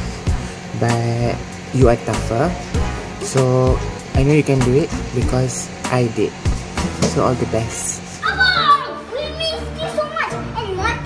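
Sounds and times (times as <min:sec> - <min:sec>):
background music: 0:00.0 - 0:11.0
young child's voice: 0:08.2 - 0:11.0.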